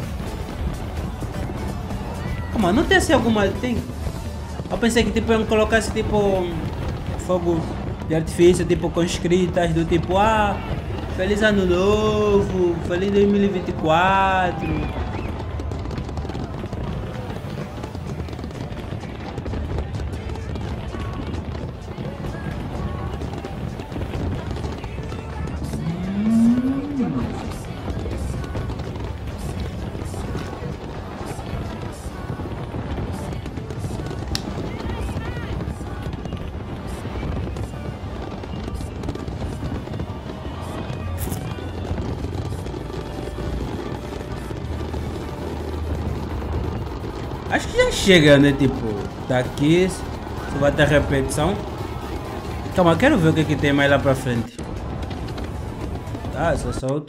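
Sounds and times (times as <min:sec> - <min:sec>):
music: 0:00.0 - 0:56.5
crowd voices: 0:00.0 - 0:57.0
faint fireworks crackles: 0:00.0 - 0:57.0
single voice rising and falling: 0:25.8 - 0:27.4.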